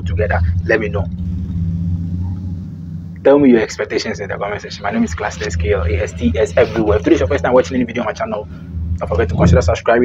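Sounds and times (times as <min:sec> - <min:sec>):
low rumbling hum: 0:00.0 - 0:10.0.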